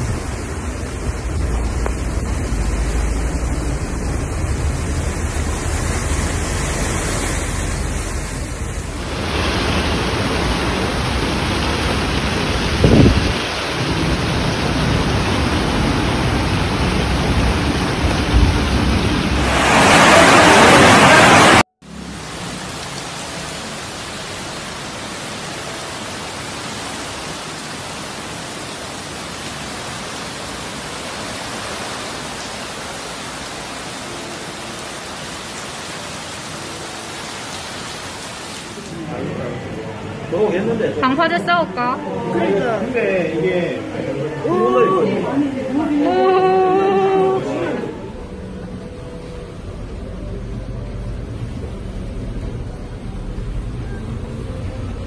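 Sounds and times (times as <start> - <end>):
floodwater rushing: 0.0 - 55.0
heavy rain: 0.0 - 55.0.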